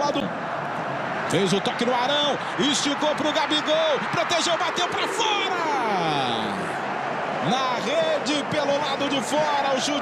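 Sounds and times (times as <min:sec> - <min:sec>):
stadium crowd noise: 0:00.0 - 0:10.0
man commentating: 0:07.4 - 0:10.0.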